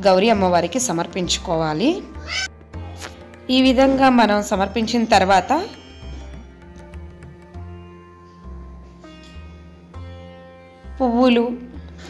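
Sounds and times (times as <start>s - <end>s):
woman speaking: 0.0s - 2.1s, 3.5s - 5.7s, 11.0s - 11.7s
animal high-pitched rising call: 2.2s - 2.5s.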